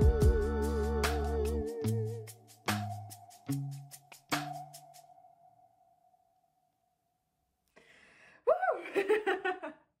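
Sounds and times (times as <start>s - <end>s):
woman exclaiming: 8.5s - 9.1s
woman laughing: 8.5s - 9.9s.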